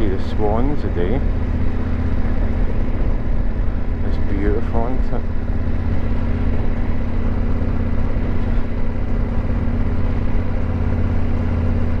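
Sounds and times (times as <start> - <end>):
motorcycle engine running steadily: 0.0 - 12.0.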